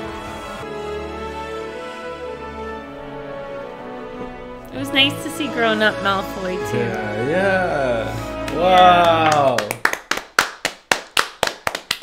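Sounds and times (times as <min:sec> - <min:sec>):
people clapping hands: 0:07.8 - 0:12.0.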